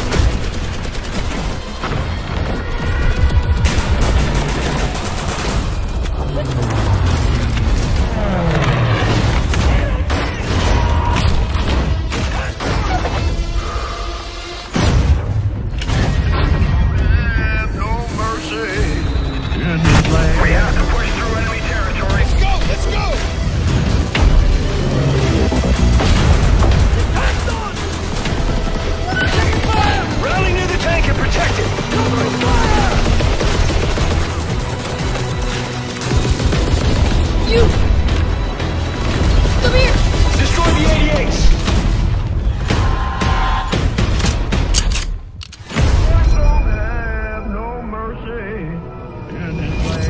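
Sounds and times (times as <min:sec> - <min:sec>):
rapid gunfire: 0:00.0 - 0:08.4, 0:24.1 - 0:37.9, 0:38.8 - 0:44.7
dramatic trailer music: 0:00.0 - 0:50.0.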